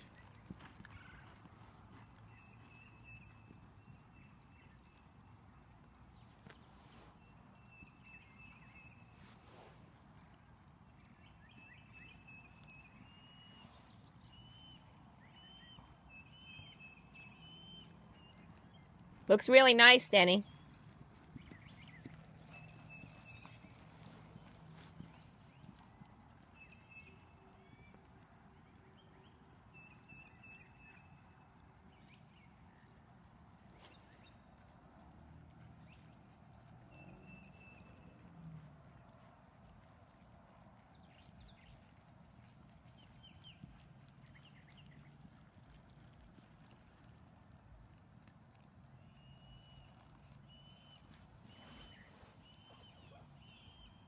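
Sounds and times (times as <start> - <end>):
horse trotting on dirt: 0.0 - 54.0.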